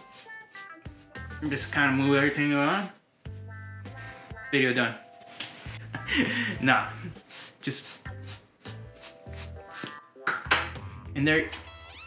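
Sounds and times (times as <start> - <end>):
brush stroking through beard: 0.0 - 2.9, 7.0 - 9.9.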